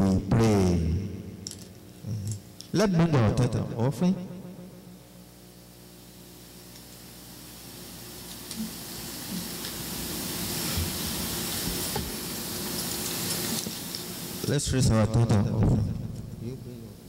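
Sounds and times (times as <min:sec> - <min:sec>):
low electrical hum: 0:00.0 - 0:17.0
steady hiss: 0:00.0 - 0:17.0.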